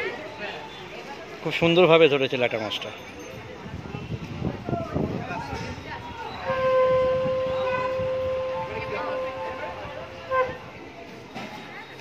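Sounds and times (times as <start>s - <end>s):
conch shell blown: 6.4s - 10.8s.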